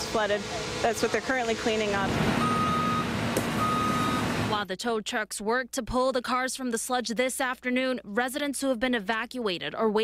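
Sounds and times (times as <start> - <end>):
steady engine hum: 0.0 - 4.6
reversing alarm beeping: 2.4 - 4.5.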